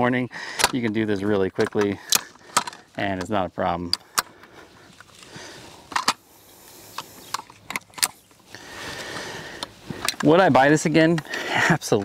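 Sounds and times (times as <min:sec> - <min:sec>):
metal latches clicking: 0:00.5 - 0:04.4, 0:05.9 - 0:06.2, 0:07.0 - 0:08.2
faint handling rustle: 0:00.8 - 0:12.0.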